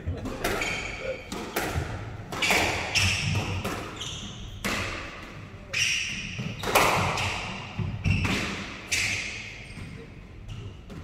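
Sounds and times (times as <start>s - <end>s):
squash ball hitting rackets and walls: 0.1s - 11.0s.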